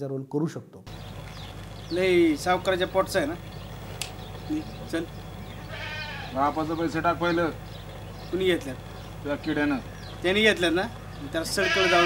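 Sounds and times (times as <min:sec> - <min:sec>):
men speaking: 0:01.8 - 0:12.0.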